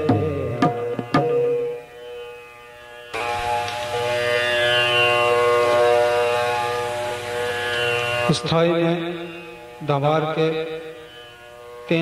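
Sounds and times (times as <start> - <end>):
tanpura drone: 0.0 - 12.0.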